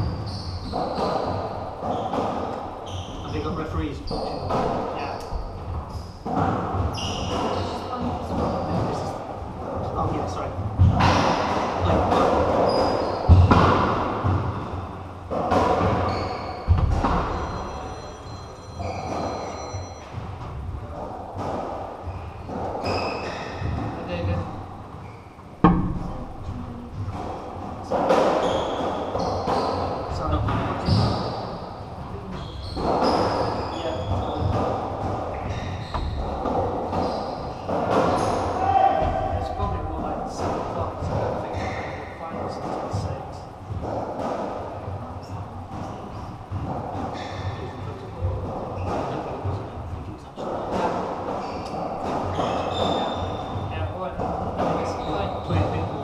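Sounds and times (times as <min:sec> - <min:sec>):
ball hitting walls: 0:04.1 - 0:17.4, 0:20.1 - 0:31.6
ball struck by racquets: 0:10.7 - 0:17.3.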